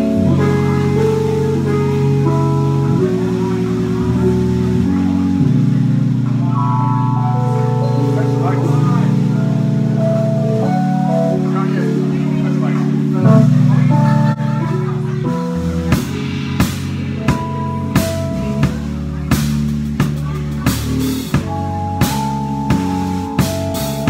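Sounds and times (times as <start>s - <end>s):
deep bass notes: 0.0s - 24.0s
organ keyboard chords: 0.0s - 24.0s.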